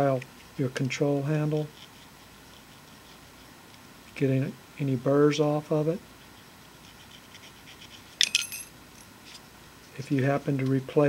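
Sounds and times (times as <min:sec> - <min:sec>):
metallic clink ringing: 0:08.2 - 0:09.1.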